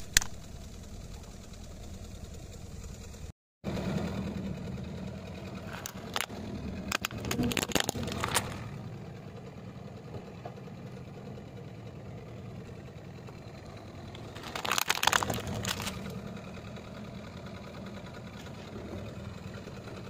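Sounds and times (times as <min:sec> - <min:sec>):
car engine hum: 0:00.0 - 0:20.0
plastic cracking and crunching: 0:06.9 - 0:08.7, 0:14.2 - 0:16.2.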